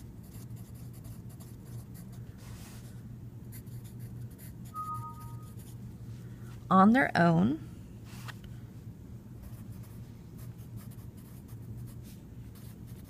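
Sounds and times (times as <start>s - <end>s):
pencil writing on paper: 0.2s - 2.1s.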